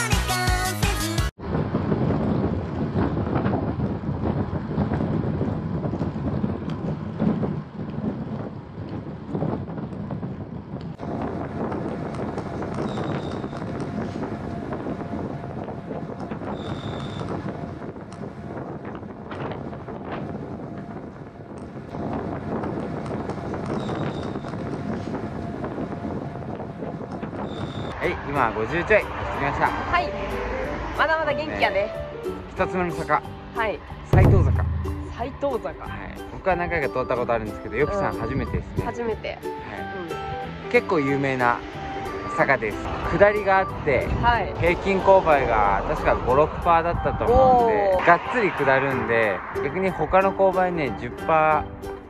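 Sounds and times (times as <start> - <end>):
background music: 0.0 - 1.3, 28.3 - 52.0
wind rushing over microphone: 1.3 - 52.0.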